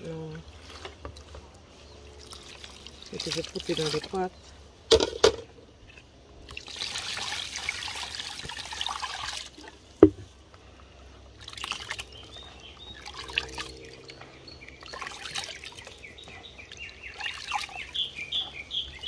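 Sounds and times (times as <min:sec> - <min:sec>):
liquid pouring into a pot: 0:06.5 - 0:09.7.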